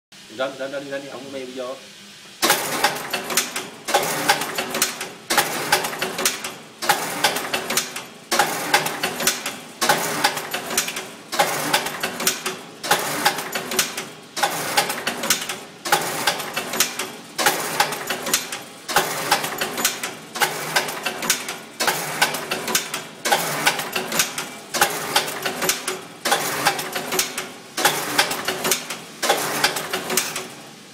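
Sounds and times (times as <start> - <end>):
machine clacking and ticking: 2.4 - 30.5.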